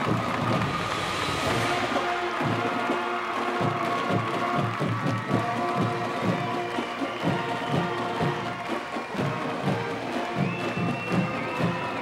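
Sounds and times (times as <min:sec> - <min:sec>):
steady drum beat: 0:00.0 - 0:12.0
brass holding chords: 0:01.2 - 0:04.7.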